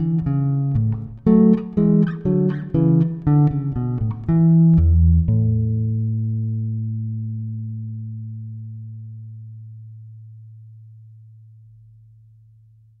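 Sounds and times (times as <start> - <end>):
electric bass low note ringing: 3.6 - 12.5.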